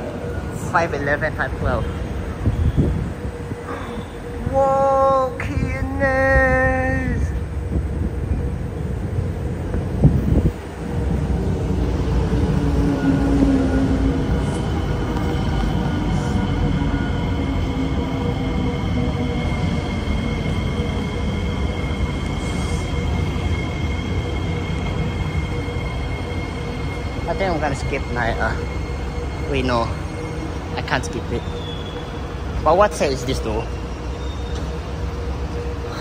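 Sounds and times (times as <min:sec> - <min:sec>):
train wheels rumbling: 0:00.0 - 0:36.0.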